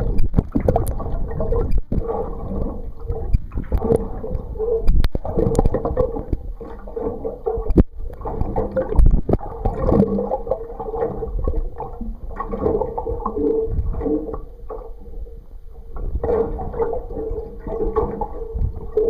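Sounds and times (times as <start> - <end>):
faint steady hum: 0.0 - 19.0
water gurgling and sloshing: 0.0 - 19.0.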